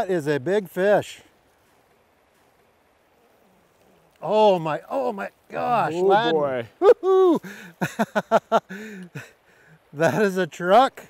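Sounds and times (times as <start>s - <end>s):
man exclaiming: 4.2s - 7.6s
bursts of laughter: 6.8s - 9.4s.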